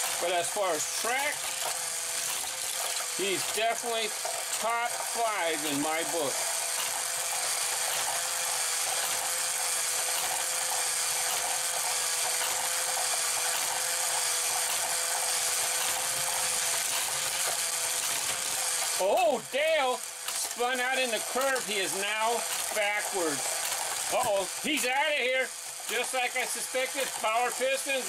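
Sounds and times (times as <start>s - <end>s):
toy motorized lift whining: 0.0s - 28.0s.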